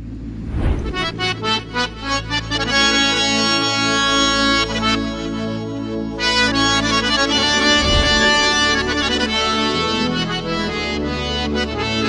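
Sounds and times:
harmonium playing: 1.4s - 12.0s.

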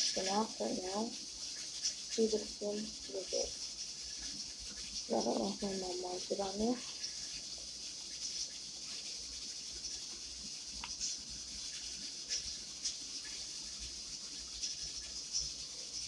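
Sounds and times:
steady hiss: 0.0s - 16.0s.

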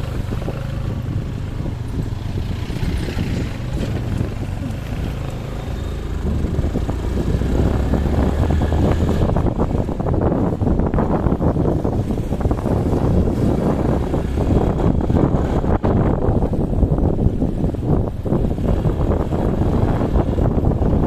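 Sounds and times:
motorcycle engine running: 0.0s - 21.0s
wind buffeting microphone: 0.0s - 21.0s.

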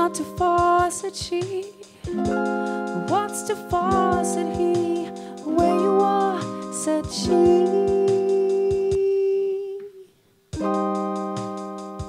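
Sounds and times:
electric keyboard chords: 0.0s - 9.2s, 10.6s - 12.0s
pop drum beat: 0.0s - 9.3s, 10.5s - 12.0s.

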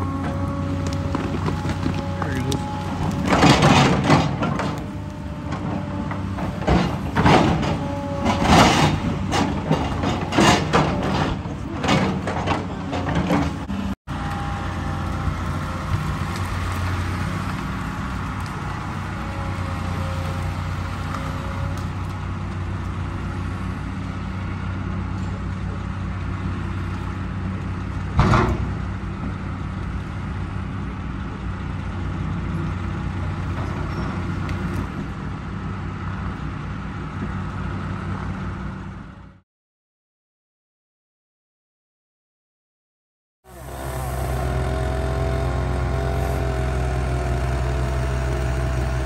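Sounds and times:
excavator diesel engine running: 0.0s - 39.4s, 43.5s - 49.0s.

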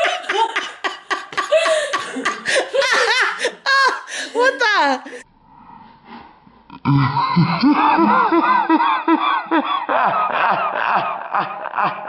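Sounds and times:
people laughing hard: 0.0s - 5.2s, 7.3s - 12.0s.

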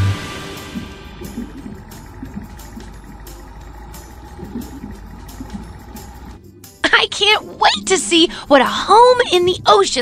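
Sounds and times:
low motor hum: 0.0s - 6.8s
bubbling: 0.8s - 6.4s.

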